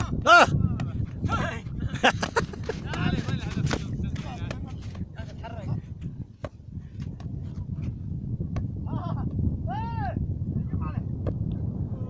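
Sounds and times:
men calling out: 0.0 - 1.7
wind on microphone: 0.0 - 12.0.

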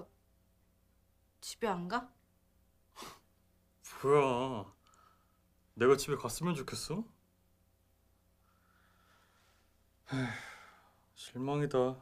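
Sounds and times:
man sighing: 10.0 - 10.9.

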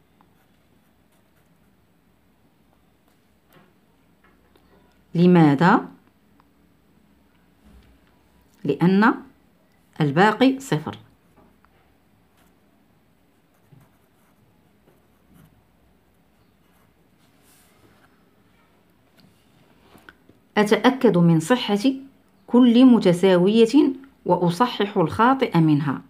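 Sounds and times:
pen scratching on paper: 1.1 - 1.7, 13.4 - 17.0.

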